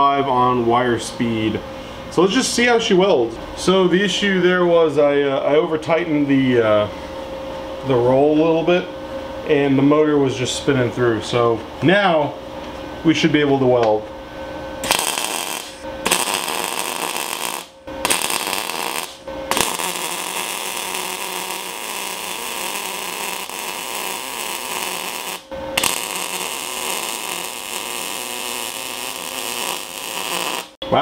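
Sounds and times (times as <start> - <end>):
welding arc: 14.8 - 30.8.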